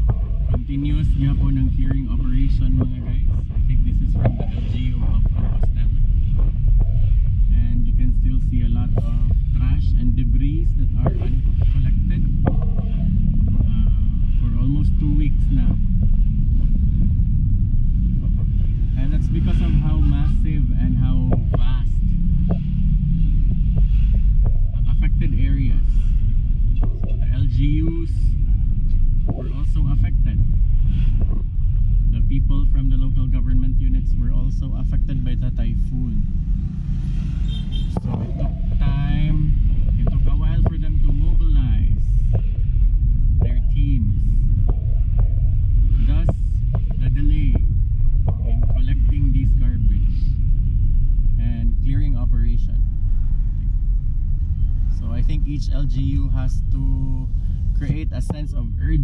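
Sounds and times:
car engine and road noise: 0.0 - 59.0.

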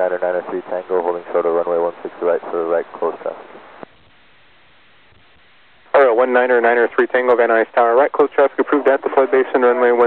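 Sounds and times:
radio voice transmission: 0.0 - 3.6, 5.9 - 10.0
radio static hiss: 0.0 - 10.0.

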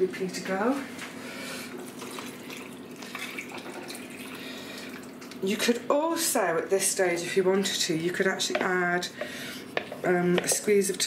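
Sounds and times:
liquid pouring into pot: 1.7 - 5.4.

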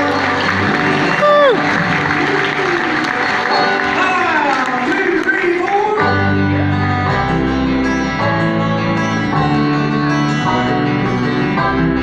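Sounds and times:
audience applauding and cheering: 0.0 - 6.3
upright bass and plucked strings: 5.6 - 12.0.

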